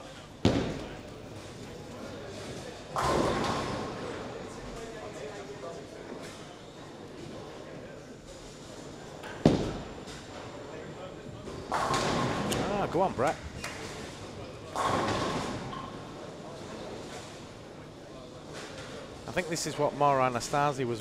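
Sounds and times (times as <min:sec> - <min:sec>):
bowling ball thud: 0:00.4 - 0:01.1, 0:02.9 - 0:04.1, 0:14.7 - 0:15.9.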